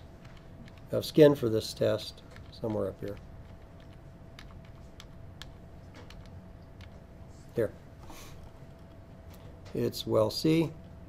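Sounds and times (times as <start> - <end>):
faint keyboard clicks: 2.2 - 7.0.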